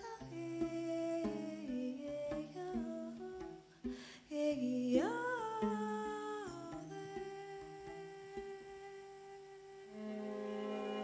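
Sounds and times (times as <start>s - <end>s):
violin sustaining a low note: 9.8s - 11.0s.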